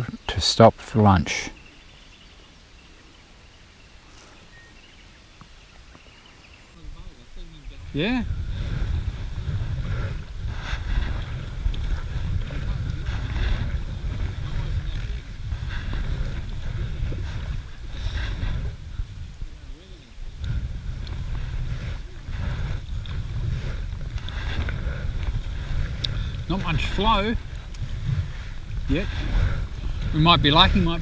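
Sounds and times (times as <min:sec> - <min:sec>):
wind rumble on microphone: 0:01.6 - 0:31.0.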